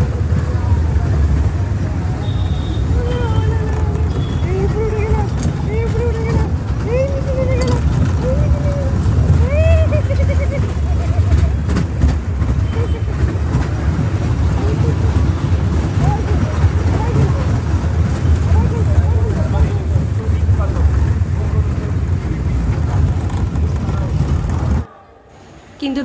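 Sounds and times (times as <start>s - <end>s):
faint rider voices: 0.0s - 25.3s
roller coaster rumble: 0.0s - 26.0s
wind buffeting microphone: 2.8s - 24.9s.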